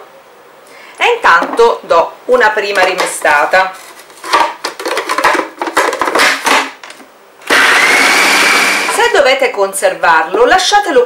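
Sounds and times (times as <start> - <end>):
plastic lid clicking and knocking: 4.3 - 7.0
food processor motor whirring: 7.4 - 9.0.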